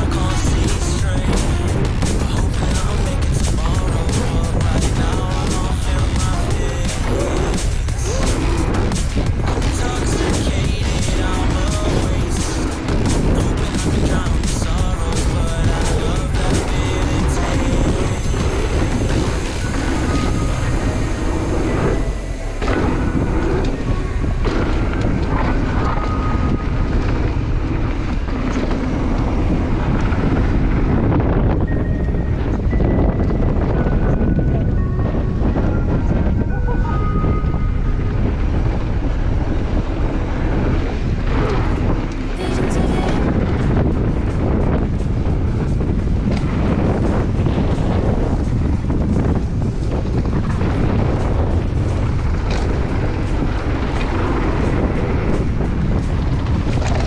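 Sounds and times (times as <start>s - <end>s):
wind rush on microphone: 0.0s - 57.0s
bike tyres rattling on dirt: 43.4s - 57.0s.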